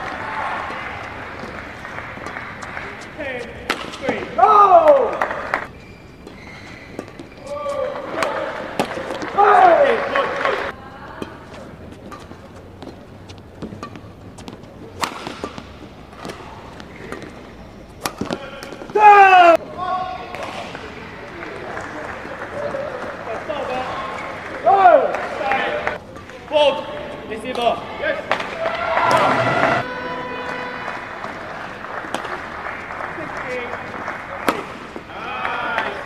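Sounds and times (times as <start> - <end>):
rackets striking shuttlecock: 1.0 - 9.9, 12.0 - 19.5, 23.1 - 32.5, 34.3 - 36.0
player shouting: 4.1 - 5.4, 9.3 - 10.7, 18.4 - 20.3, 24.6 - 26.0, 27.7 - 31.2.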